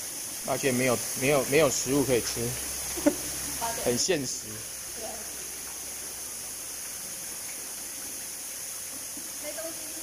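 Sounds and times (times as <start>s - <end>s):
running water hiss: 0.0s - 10.0s.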